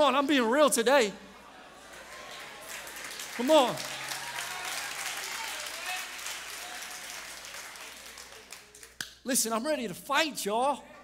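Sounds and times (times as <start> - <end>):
congregation applauding: 1.8 - 9.0.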